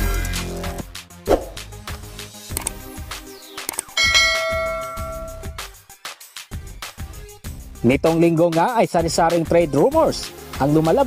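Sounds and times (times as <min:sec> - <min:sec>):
background music with steady beat: 0:00.0 - 0:11.0
bell ding: 0:04.0 - 0:05.6.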